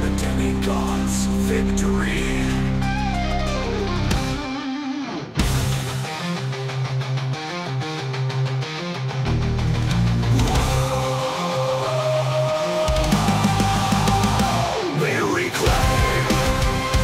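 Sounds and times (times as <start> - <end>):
bass guitar: 0.0 - 17.0
distorted electric guitars: 0.0 - 17.0
drums: 2.6 - 17.0.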